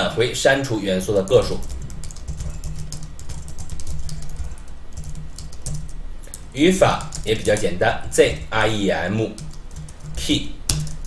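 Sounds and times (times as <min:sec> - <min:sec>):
steady low hum: 0:00.0 - 0:11.0
fast typing on keyboard: 0:01.2 - 0:08.5, 0:09.2 - 0:11.0.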